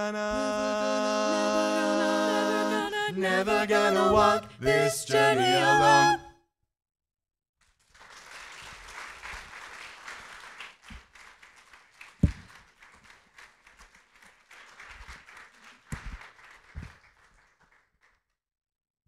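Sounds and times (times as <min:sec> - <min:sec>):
congregation applauding: 0:07.8 - 0:18.2
microphones being handled thumps: 0:12.2 - 0:12.5, 0:15.9 - 0:16.2.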